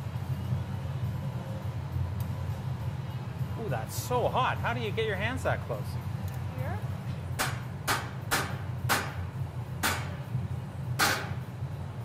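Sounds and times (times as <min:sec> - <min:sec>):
steady low hum: 0:00.0 - 0:12.0
sharp metallic taps: 0:07.4 - 0:10.2, 0:11.0 - 0:11.4.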